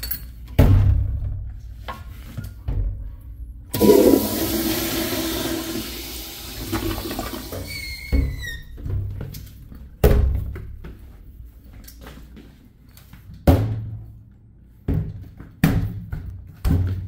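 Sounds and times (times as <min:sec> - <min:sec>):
toilet flushing water rush: 0:03.7 - 0:07.8.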